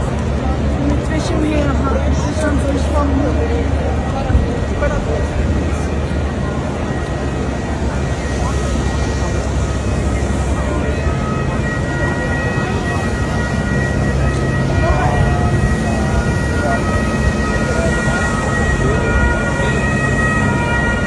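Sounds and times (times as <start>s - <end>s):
hubbub of voices: 0.0s - 21.0s
traffic noise: 0.0s - 21.0s.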